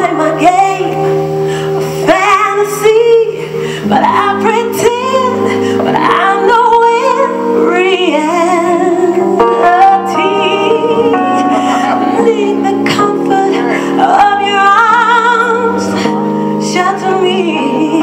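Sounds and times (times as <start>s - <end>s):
woman singing with vibrato: 0.0s - 18.0s
band playing: 4.8s - 17.4s.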